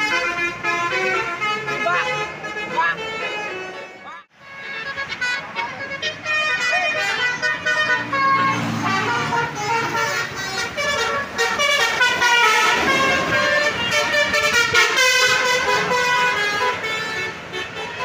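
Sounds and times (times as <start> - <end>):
engine and traffic noise: 0.0 - 18.0
musical air horns playing: 0.0 - 18.0.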